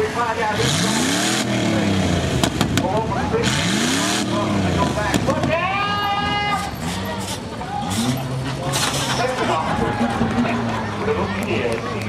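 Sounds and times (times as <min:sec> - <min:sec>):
voices talking: 0:02.8 - 0:12.0.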